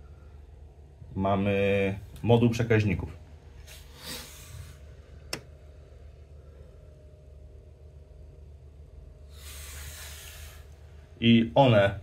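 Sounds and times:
steady low hum: 0:00.0 - 0:12.0
brief hiss: 0:03.6 - 0:04.8, 0:09.3 - 0:10.8.

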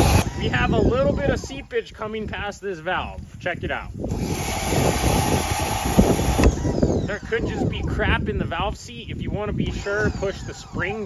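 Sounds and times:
pressure washer spraying metal: 0:04.3 - 0:06.5.

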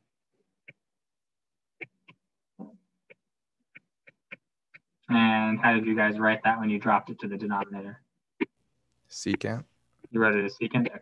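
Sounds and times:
stylus tapping on tablet: 0:01.8 - 0:05.0.

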